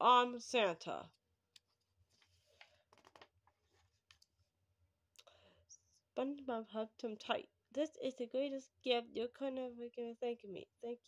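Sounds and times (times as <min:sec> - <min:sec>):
paper page turning: 0:02.1 - 0:04.0.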